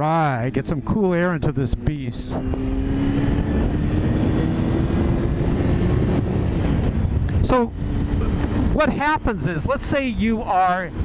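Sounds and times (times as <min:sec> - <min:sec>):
motorcycle engine accelerating: 0:00.1 - 0:11.0
wind rush on microphone: 0:00.4 - 0:11.0.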